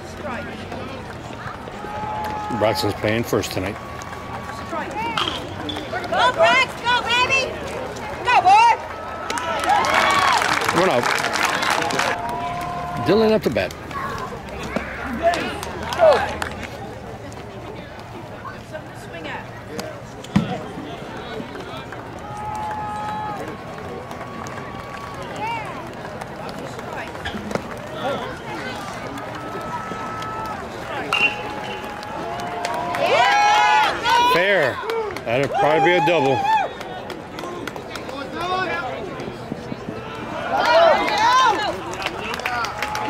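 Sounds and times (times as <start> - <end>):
spectators shouting: 1.5 - 16.4, 22.1 - 26.0, 27.8 - 37.6, 39.8 - 43.0.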